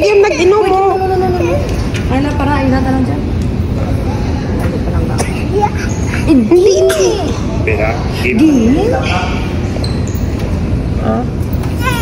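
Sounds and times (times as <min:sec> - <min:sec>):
low rumble in echoing hall: 0:00.0 - 0:12.0.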